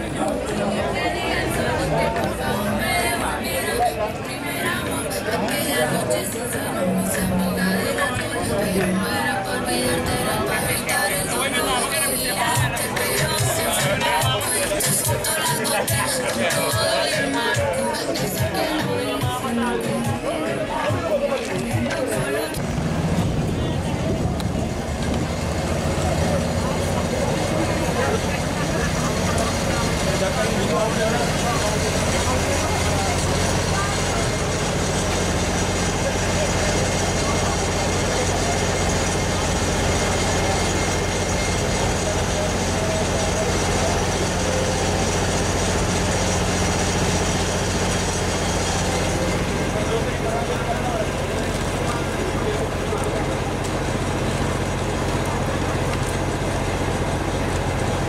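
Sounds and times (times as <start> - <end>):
large engine idling: 0.0 - 58.0
people talking: 0.0 - 58.0.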